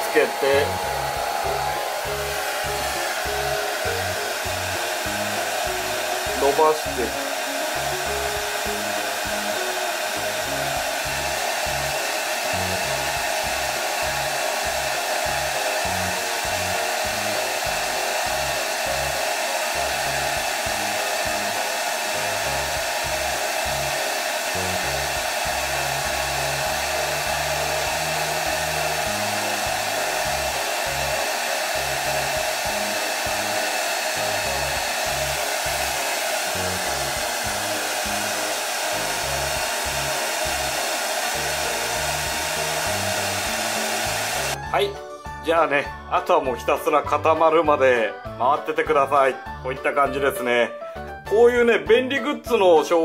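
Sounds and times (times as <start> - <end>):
hair dryer blowing: 0.0 - 44.9.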